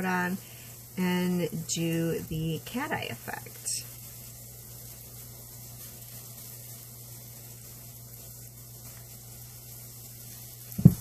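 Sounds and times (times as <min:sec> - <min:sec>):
low background hum: 0:00.0 - 0:11.0
loud low thump: 0:10.8 - 0:11.0.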